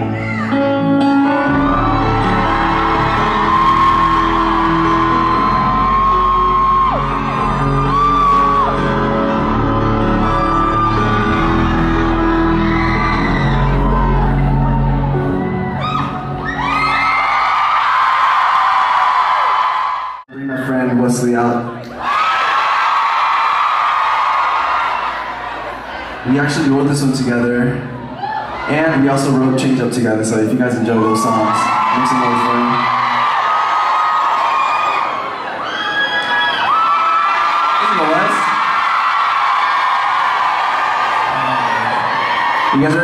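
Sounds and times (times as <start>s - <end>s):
fans screaming and whooping: 0.0s - 20.2s, 27.9s - 29.3s, 30.6s - 43.0s.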